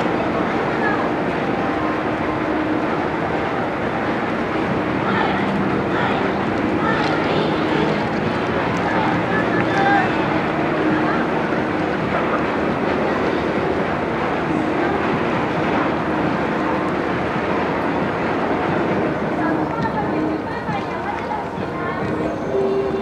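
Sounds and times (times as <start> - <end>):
voices: 0.0 - 23.0
wind rumbling on microphone: 0.0 - 23.0.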